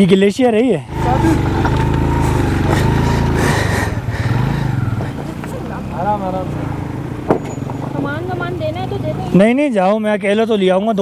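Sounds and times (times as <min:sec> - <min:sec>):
background voices talking: 0:00.9 - 0:09.4
motorcycle engine idling: 0:00.9 - 0:09.6.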